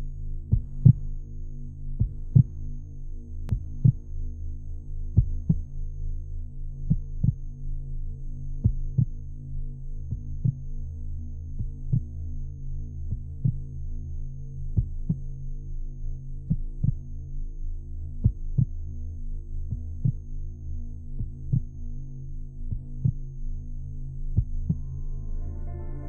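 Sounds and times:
low steady drone: 0:00.0 - 0:26.0
slow heartbeat: 0:00.4 - 0:01.3, 0:01.9 - 0:02.8, 0:03.4 - 0:07.8, 0:08.4 - 0:09.4, 0:10.0 - 0:10.8, 0:11.4 - 0:12.4, 0:13.0 - 0:26.0.

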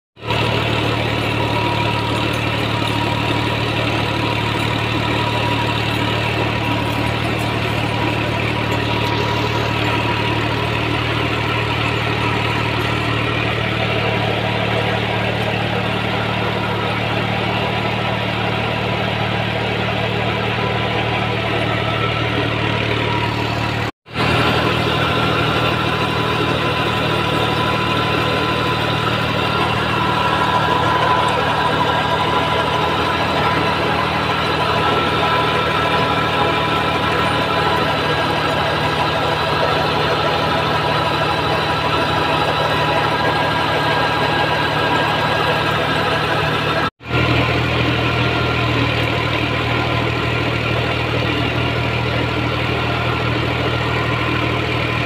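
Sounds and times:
tractor diesel engine under load: 0:00.0 - 0:55.0.

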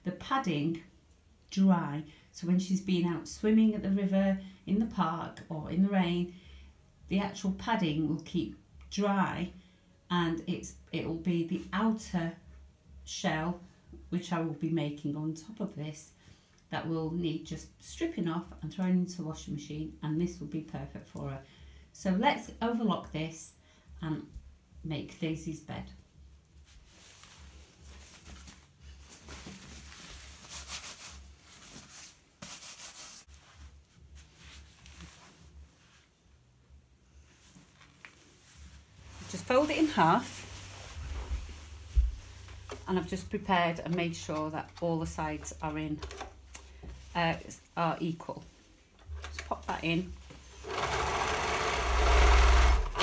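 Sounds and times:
fabric rustling: 0:26.5 - 0:36.4, 0:37.2 - 0:45.4
overlocker sewing machine whirring: 0:50.5 - 0:53.0.

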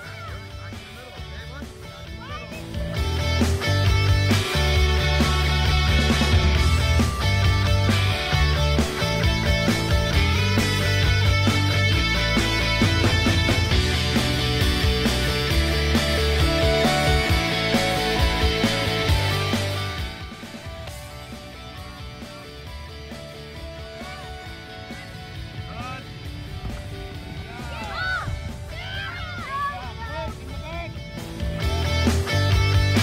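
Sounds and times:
rock music with guitar: 0:00.0 - 0:33.0.

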